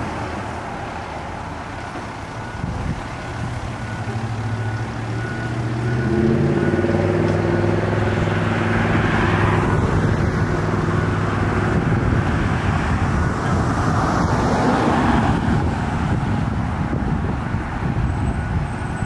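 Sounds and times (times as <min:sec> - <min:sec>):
diesel engine running: 0:00.0 - 0:19.0
car passing: 0:03.4 - 0:16.9
short beeps: 0:03.8 - 0:07.0.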